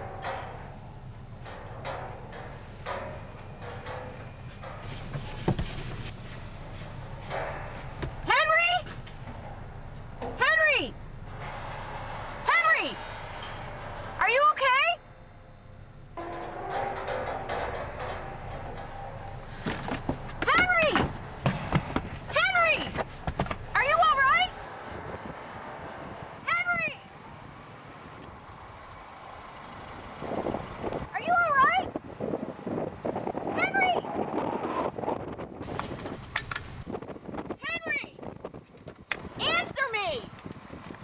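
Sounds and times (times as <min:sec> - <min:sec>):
rustling noise: 0:02.1 - 0:10.2, 0:16.5 - 0:24.7
wind noise: 0:16.5 - 0:41.0.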